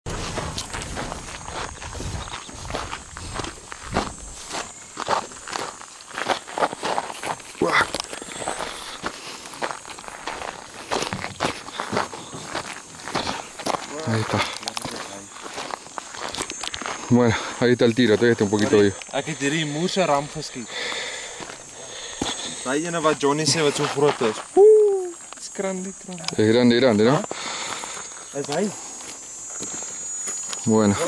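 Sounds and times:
footsteps on dry grass and stones: 0.0s - 31.0s.

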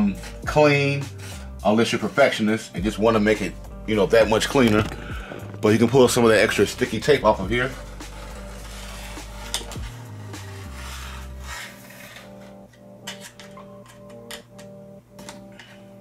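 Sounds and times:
background music with bass line: 0.0s - 16.0s
hand tool scraping sheet metal: 6.4s - 14.2s.

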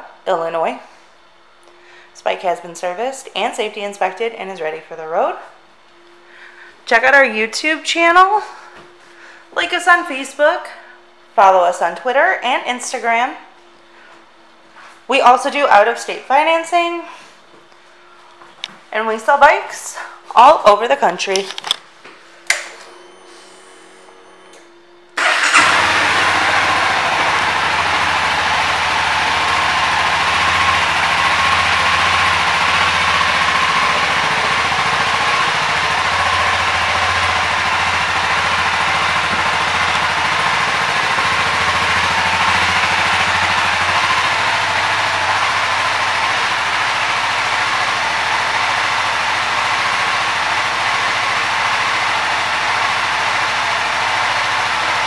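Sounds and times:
electric starter cranking: 25.2s - 55.0s
motorcycle engine idling: 25.2s - 55.0s.

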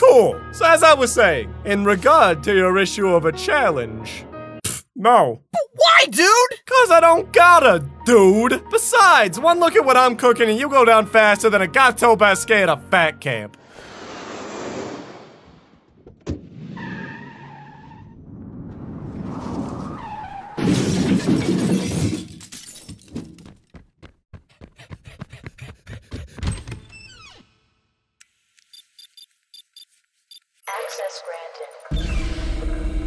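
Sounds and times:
rushing whoosh: 13.6s - 15.9s.

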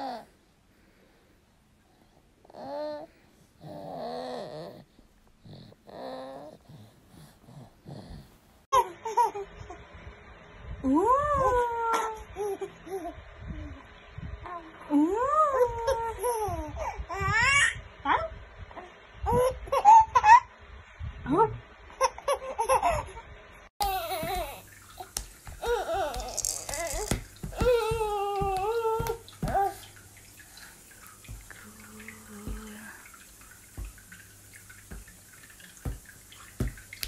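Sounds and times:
baby cooing: 2.5s - 4.8s, 23.8s - 29.9s
baby squealing: 25.6s - 29.8s.

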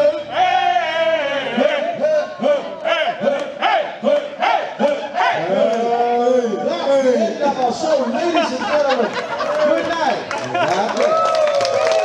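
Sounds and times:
crowd chanting in rhythm: 0.2s - 5.6s.

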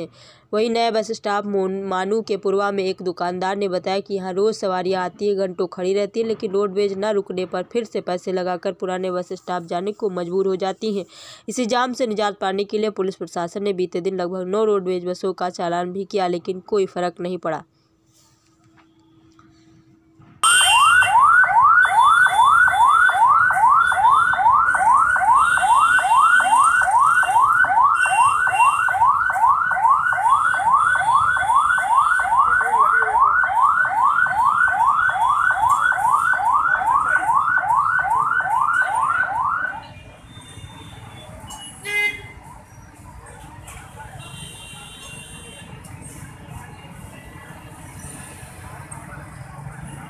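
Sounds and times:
street traffic noise: 0.0s - 50.0s
ambulance siren yelping: 20.4s - 44.2s.

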